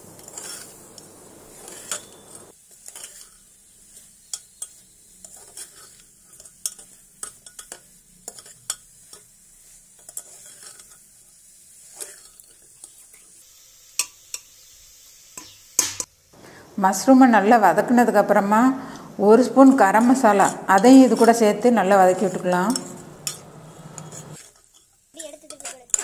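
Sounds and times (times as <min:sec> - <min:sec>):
faint frying sizzle: 0:00.0 - 0:26.0
metal spoon scraping a pot: 0:00.2 - 0:11.2, 0:11.8 - 0:13.0, 0:19.9 - 0:26.0.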